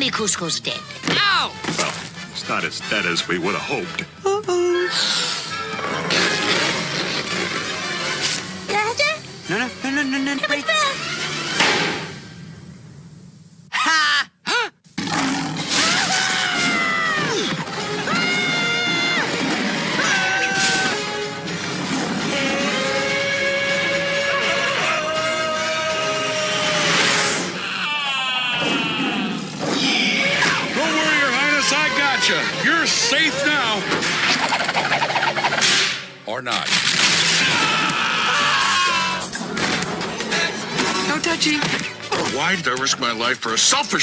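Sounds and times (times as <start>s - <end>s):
music: 0.0s - 12.7s, 15.8s - 27.6s, 29.2s - 36.2s, 36.8s - 44.0s
cartoon yells: 15.7s - 17.5s, 23.1s - 33.5s, 37.4s - 39.3s.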